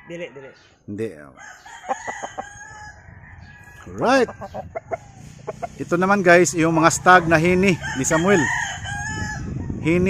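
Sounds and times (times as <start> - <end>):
rooster crowing: 1.4 - 4.6, 7.1 - 9.8
chicken clucks: 3.4 - 5.9.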